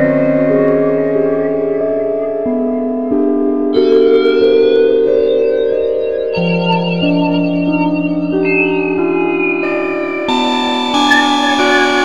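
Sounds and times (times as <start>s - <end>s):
sustained synthesizer chord: 0.0s - 12.0s.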